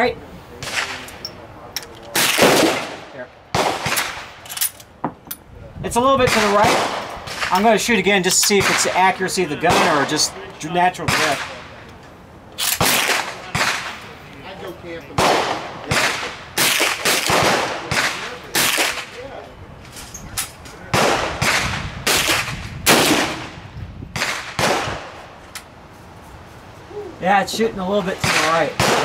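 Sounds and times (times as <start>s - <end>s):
rifle shots with echo: 2.2s - 4.4s, 6.2s - 7.8s, 8.6s - 10.4s, 11.0s - 11.8s, 12.6s - 14.0s, 15.2s - 19.2s, 20.9s - 25.2s, 28.2s - 29.0s.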